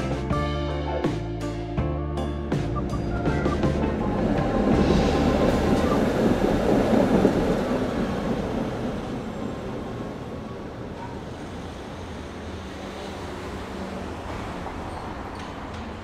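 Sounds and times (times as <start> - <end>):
tram running past: 2.6 - 16.0.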